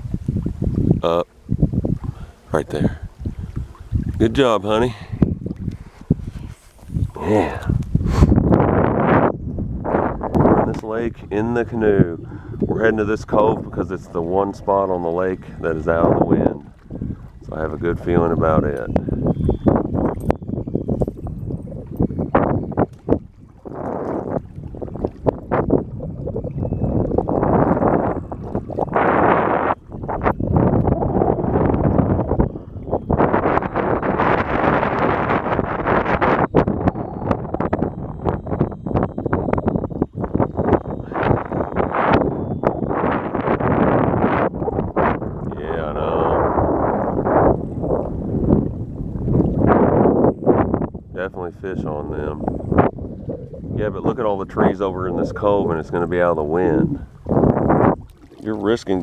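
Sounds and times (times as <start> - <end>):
water slapping against hull: 0.0 - 8.8, 9.8 - 45.6, 46.2 - 59.0
wind buffeting microphone: 0.0 - 59.0.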